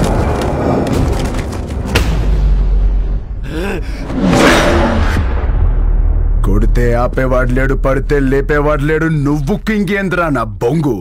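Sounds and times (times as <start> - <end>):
low drone of film score: 0.0 - 10.8.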